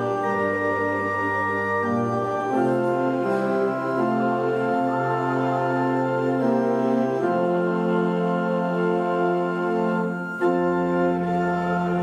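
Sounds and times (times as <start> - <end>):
church organ chords: 0.0 - 12.0.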